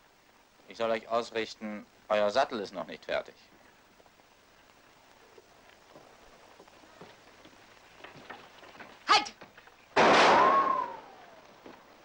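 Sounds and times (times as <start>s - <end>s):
revolver shot: 10.0s - 11.1s
ricochet whine: 10.0s - 11.8s.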